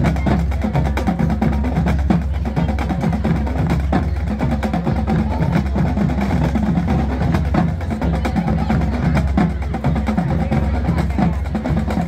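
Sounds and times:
marching band playing: 0.0s - 12.0s.

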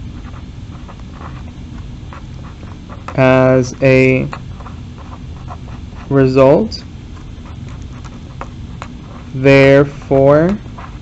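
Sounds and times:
low background hum: 0.0s - 11.0s
marker scratching on paper: 0.0s - 11.0s.

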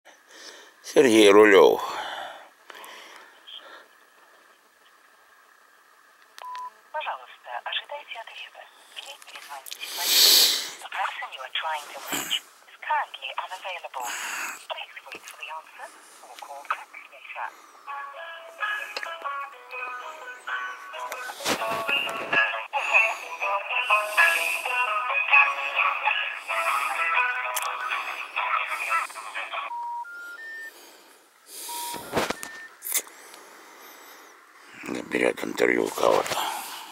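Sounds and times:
mobile phone beep: 6.4s - 6.7s, 29.7s - 30.8s, 31.6s - 32.8s
voice through phone loudspeaker: 10.8s - 17.6s, 21.4s - 29.7s.

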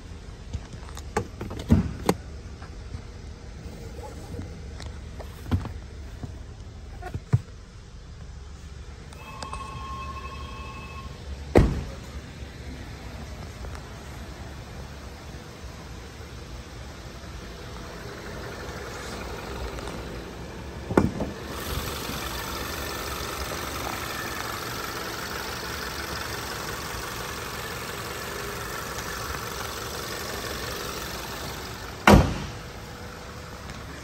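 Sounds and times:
car engine idling: 0.0s - 34.0s
hood slamming shut: 1.1s - 2.2s, 11.5s - 12.1s, 20.8s - 21.5s, 32.0s - 32.8s.

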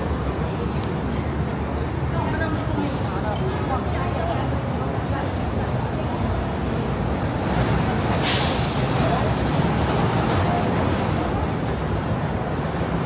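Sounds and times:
passers-by voices: 0.0s - 13.0s
road traffic rumble: 0.0s - 13.0s
sharp hiss: 8.2s - 8.9s.

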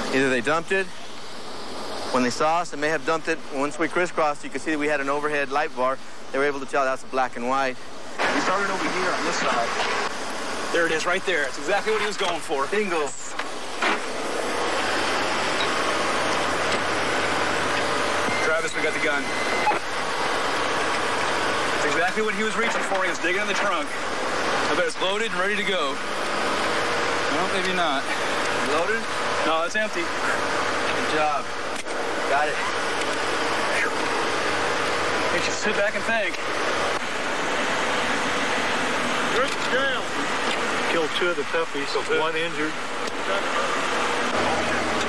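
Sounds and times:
man talking: 0.0s - 1.0s, 2.1s - 9.9s, 10.7s - 13.4s, 18.4s - 19.3s, 21.8s - 24.0s, 24.6s - 26.0s, 27.3s - 31.5s, 32.3s - 32.7s, 35.3s - 36.4s, 39.3s - 40.1s, 40.9s - 43.6s
steady rushing noise: 0.0s - 32.6s.

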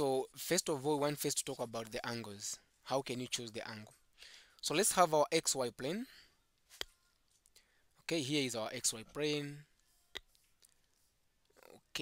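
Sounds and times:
person speaking: 0.0s - 4.0s, 8.0s - 10.3s.

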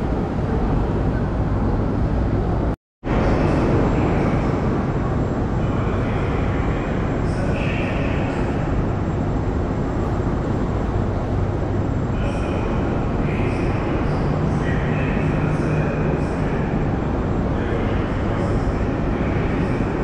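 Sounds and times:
train rumble in station: 0.0s - 20.0s.

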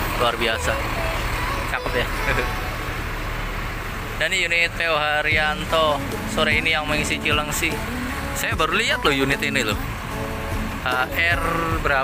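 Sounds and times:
bus engines idling: 0.0s - 12.0s
traffic noise: 0.0s - 12.0s.

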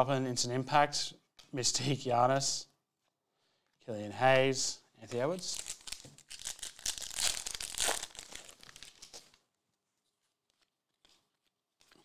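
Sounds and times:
foil wrapper crinkling and tearing: 5.5s - 9.4s.

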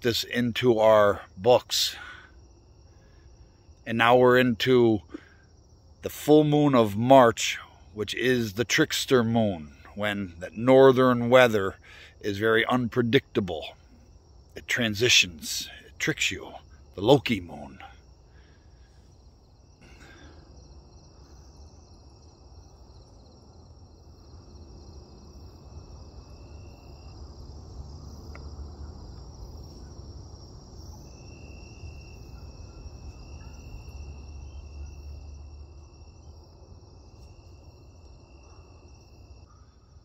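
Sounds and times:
lower steady insect trill: 0.0s - 40.0s
night insects trilling: 0.0s - 40.0s.

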